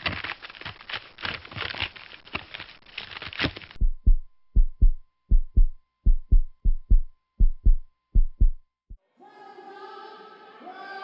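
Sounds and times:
heartbeat thuds: 3.8s - 8.6s.

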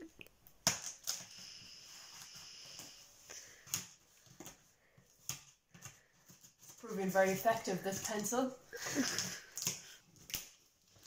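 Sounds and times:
pencil scraping tape: 0.6s - 4.0s.

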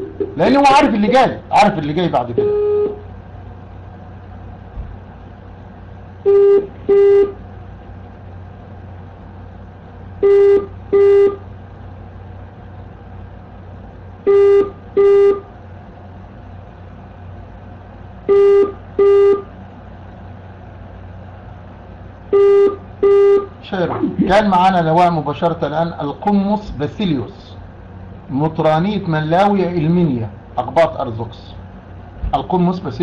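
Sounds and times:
faint line hum: 0.0s - 33.0s.

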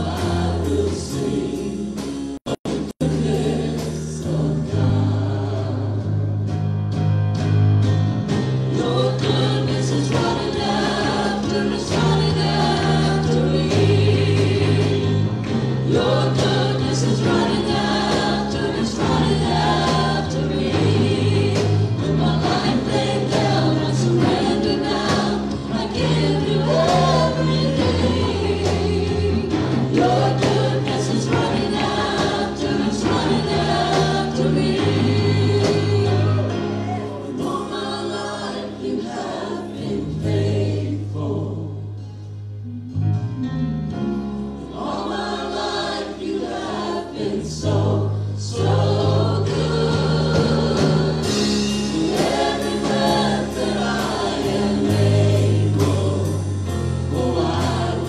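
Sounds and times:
band playing worship song: 0.0s - 42.0s, 43.3s - 58.0s
group of singers: 0.0s - 58.0s.

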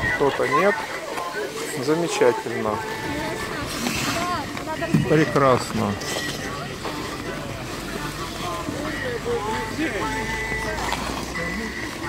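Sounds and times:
hubbub of voices: 0.0s - 12.0s
skate blades scraping ice: 0.5s - 12.0s.

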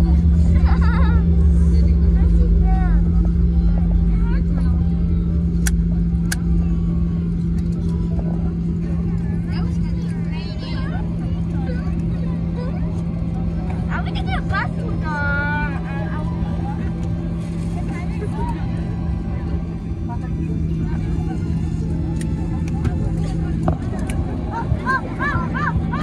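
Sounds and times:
airliner engine rumble: 0.0s - 26.0s.

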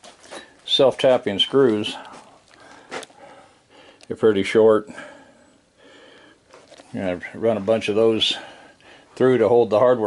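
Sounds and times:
faint handling noise: 6.2s - 8.5s.

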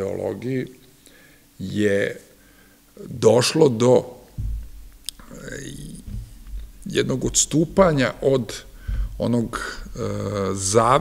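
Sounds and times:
man speaking: 0.0s - 0.8s, 1.6s - 2.3s, 3.0s - 4.2s, 5.1s - 11.0s
man's throaty hesitation sound: 5.1s - 7.1s.

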